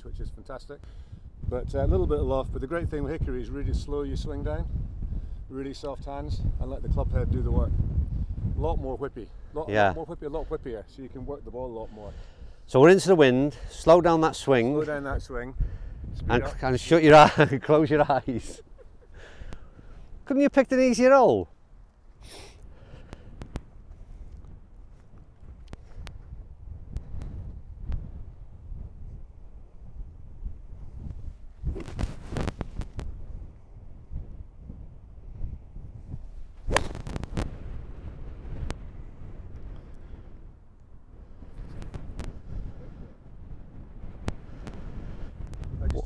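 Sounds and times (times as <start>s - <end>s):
wind buffeting microphone: 0.0s - 20.3s, 22.6s - 46.0s
golf club striking ball: 36.7s - 37.5s.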